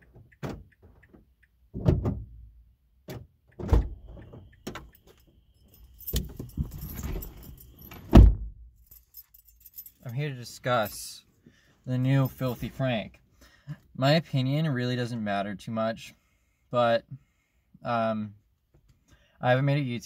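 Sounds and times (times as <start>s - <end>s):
car door shutting: 3.1s - 4.9s, 6.1s - 8.5s
keys jangling: 4.8s - 11.0s.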